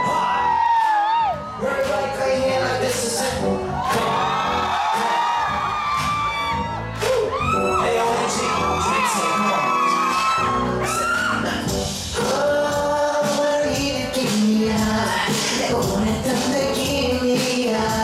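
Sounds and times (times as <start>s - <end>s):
audience whooping: 0.0s - 2.1s, 3.7s - 11.6s
pop backing track: 0.0s - 18.0s
man singing: 1.6s - 5.3s, 7.7s - 10.1s, 11.3s - 18.0s.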